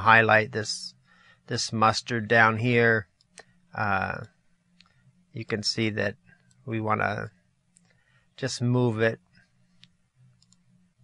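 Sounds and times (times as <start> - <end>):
faint electrical hum: 0.0 - 11.0
faint ticks: 4.2 - 5.1
computer mouse click: 9.7 - 10.7.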